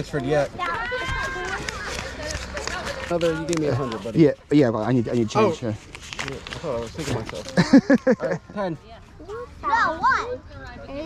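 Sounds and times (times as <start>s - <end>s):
crackly rustling handling noise: 0.0s - 8.4s
child's high-pitched voice: 9.2s - 11.0s.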